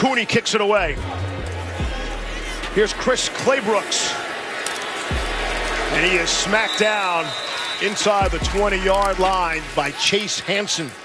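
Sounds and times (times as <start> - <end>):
background music: 0.0 - 10.0
sports commentary: 0.0 - 11.0
stadium crowd roar: 0.0 - 11.0.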